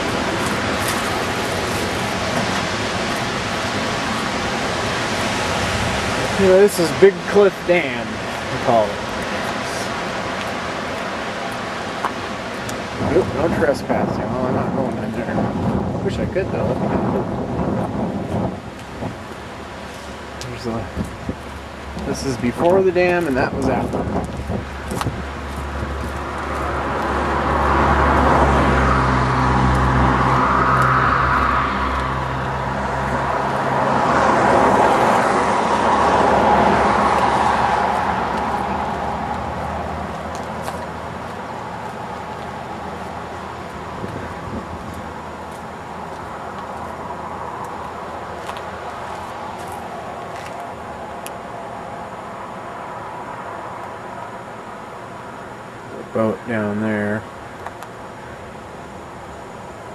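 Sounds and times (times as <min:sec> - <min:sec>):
car engine: 0:00.0 - 0:59.9
road noise: 0:00.0 - 0:59.9.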